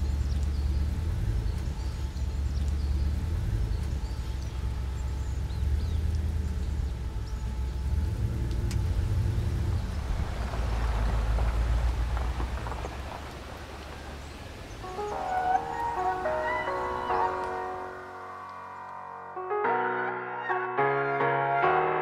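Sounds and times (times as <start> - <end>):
tyres crunching over gravel: 0.0 - 18.9
car engine rumbling: 0.0 - 19.2
soft piano music: 14.8 - 22.0.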